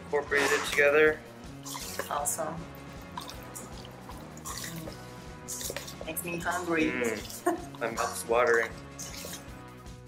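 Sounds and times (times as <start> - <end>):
soft background music: 0.0 - 10.0
wet squelching of stirred salmon: 0.4 - 10.0
spoon in metal bowl: 1.6 - 2.2, 4.4 - 9.5.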